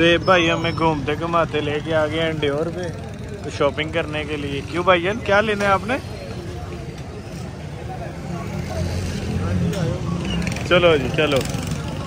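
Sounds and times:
low rumble of traffic: 0:00.0 - 0:12.0
people talking: 0:00.0 - 0:12.0.

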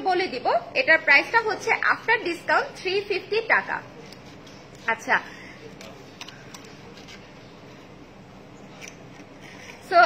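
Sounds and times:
woman speaking: 0:00.0 - 0:04.0, 0:04.8 - 0:05.4, 0:09.8 - 0:10.0.

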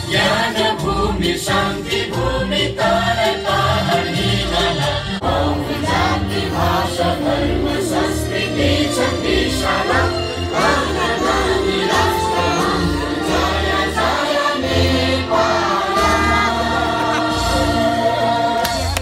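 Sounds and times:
crowd singing along: 0:00.0 - 0:19.0
group of voices singing: 0:00.0 - 0:19.0.

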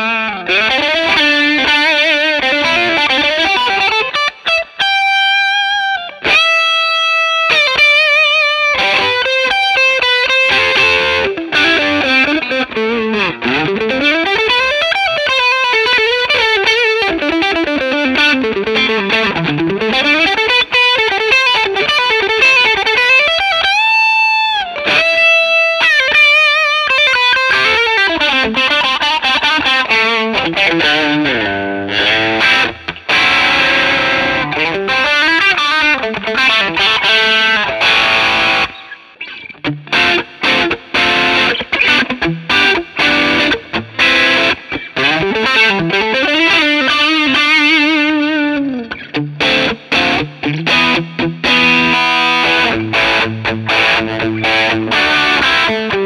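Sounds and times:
distorted electric guitar: 0:00.0 - 0:56.0.

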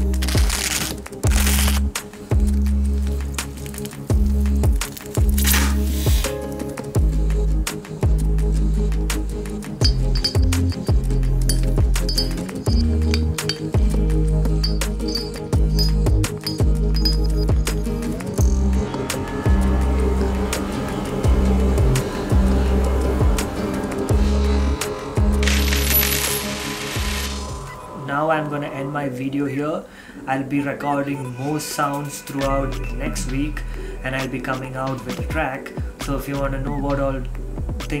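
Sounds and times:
music with bass and kick drum: 0:01.2 - 0:25.8
metal rod tapping glass bulb: 0:09.8 - 0:14.0, 0:14.6 - 0:17.8.

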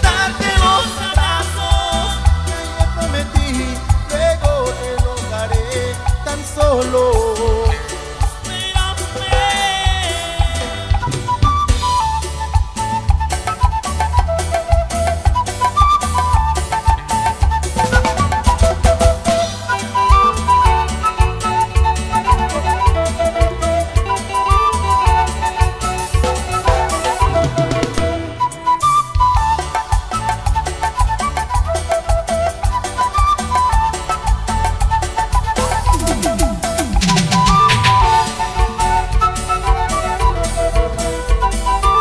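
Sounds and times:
bass beat and drums: 0:00.0 - 0:42.0
high lead melody: 0:00.0 - 0:42.0
live band playing dance music: 0:00.0 - 0:42.0.

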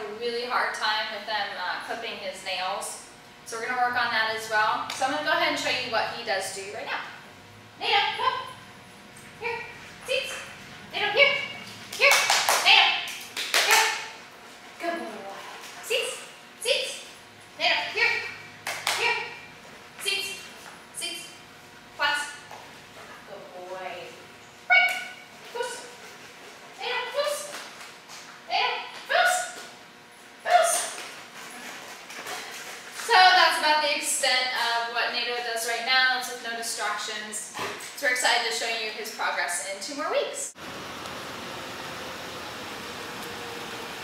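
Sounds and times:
woman calling dog: 0:07.8 - 0:08.6, 0:09.4 - 0:14.2, 0:14.8 - 0:19.4, 0:20.0 - 0:20.4, 0:22.0 - 0:22.4, 0:23.4 - 0:26.0, 0:26.8 - 0:27.6, 0:28.5 - 0:29.6, 0:30.4 - 0:31.0
hand claps: 0:11.9 - 0:14.1, 0:18.6 - 0:19.0.

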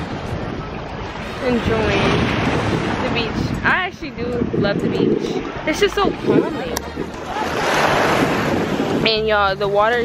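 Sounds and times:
small waves washing over sand: 0:00.0 - 0:09.1
wind rumbling on microphone: 0:00.0 - 0:10.0.

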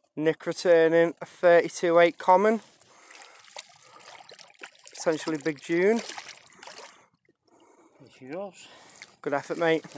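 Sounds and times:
water sloshing and trickling: 0:01.4 - 0:09.9.

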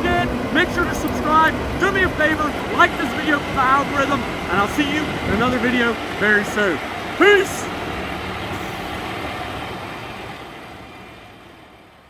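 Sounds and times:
diesel harvester engine running: 0:00.0 - 0:12.0.

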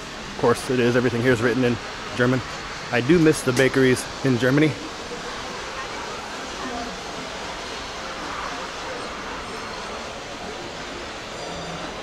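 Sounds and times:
faint distant voices: 0:00.0 - 0:12.0
rushing city background noise: 0:00.0 - 0:12.0.

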